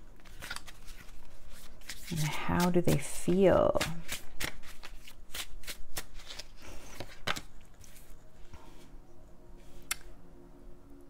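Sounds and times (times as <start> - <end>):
cards being shuffled: 0.2 - 8.9
card snapping: 3.8 - 8.0.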